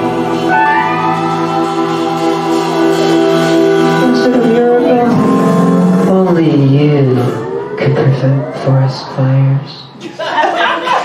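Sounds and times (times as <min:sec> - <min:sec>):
live band holding chord: 0:00.0 - 0:09.7.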